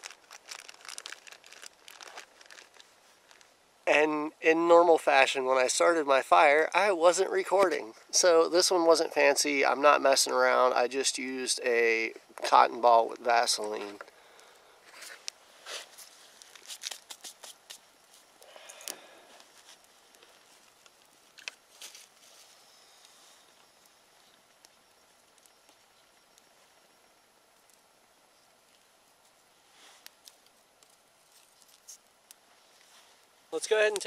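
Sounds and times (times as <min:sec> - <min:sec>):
dry sticks being handled: 0:00.0 - 0:03.5, 0:13.6 - 0:26.8, 0:28.5 - 0:34.0
twig fire crackling: 0:00.0 - 0:04.3, 0:05.0 - 0:34.0.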